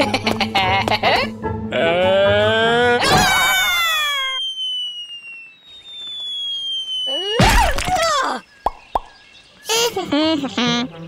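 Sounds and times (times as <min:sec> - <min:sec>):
long falling whistle: 0:03.5 - 0:07.8.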